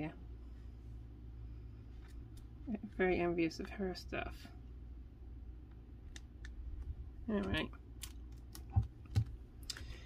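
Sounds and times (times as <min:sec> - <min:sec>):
paper handling clicks and taps: 0:06.1 - 0:09.4.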